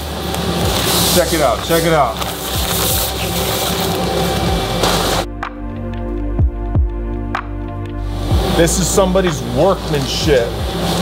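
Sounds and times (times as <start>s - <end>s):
background music: 0.0s - 11.0s
stiff wrapping rustling: 0.2s - 5.3s.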